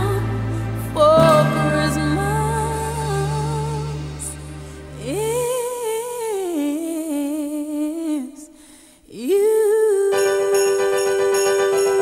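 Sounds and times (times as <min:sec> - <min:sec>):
backing music: 0:00.0 - 0:06.0.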